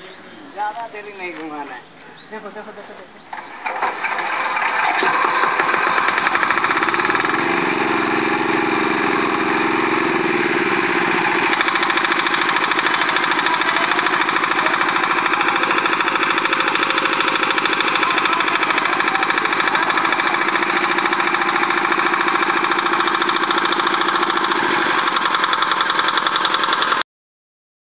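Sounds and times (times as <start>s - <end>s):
small pump engine running: 3.3s - 27.0s.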